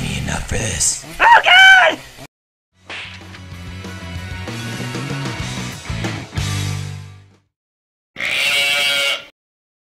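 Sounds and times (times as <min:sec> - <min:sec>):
wavering bleat-like cry: 0:01.2 - 0:02.0, 0:08.2 - 0:09.3.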